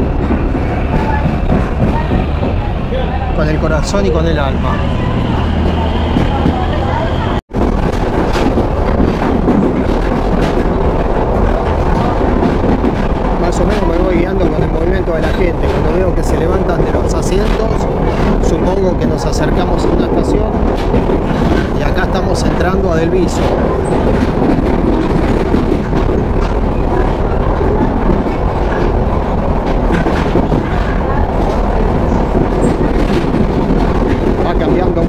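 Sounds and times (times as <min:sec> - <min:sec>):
train running at speed: 0:00.0 - 0:35.0
wheels and carriage rattling: 0:00.0 - 0:35.0
wind on microphone: 0:04.6 - 0:35.0.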